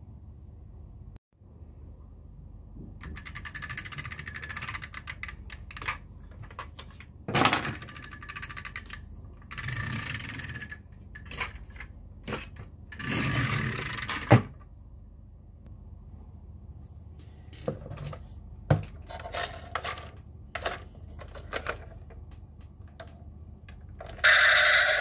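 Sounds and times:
toy train clicking: 0:07.7 - 0:11.5, 0:24.0 - 0:25.0.

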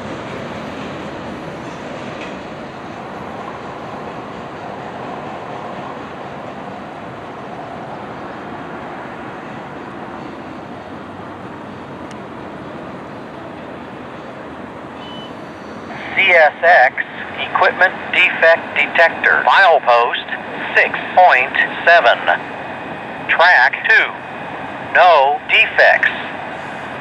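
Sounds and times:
train rail rumble: 0:00.0 - 0:27.0.

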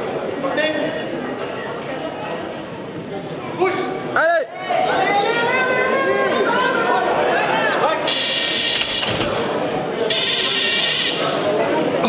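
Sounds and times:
hubbub of a hall: 0:00.0 - 0:12.0.

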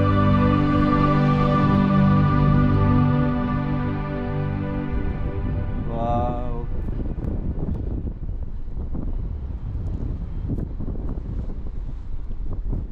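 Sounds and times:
held music chord: 0:00.0 - 0:08.3
wind buffeting microphone: 0:04.3 - 0:12.9.

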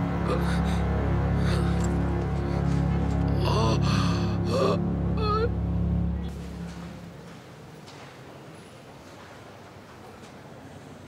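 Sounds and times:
background music: 0:00.0 - 0:07.3.

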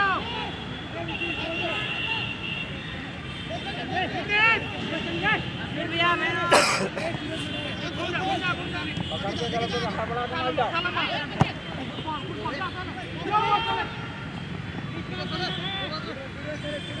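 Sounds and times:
players shouting and calling: 0:00.0 - 0:17.0
steady background noise: 0:00.0 - 0:17.0.

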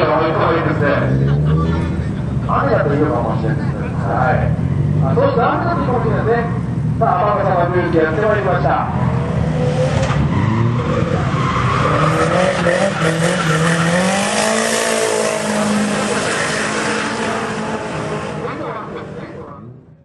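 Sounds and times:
car engine at high revs: 0:07.7 - 0:20.0
tyre squeal: 0:09.6 - 0:18.4.

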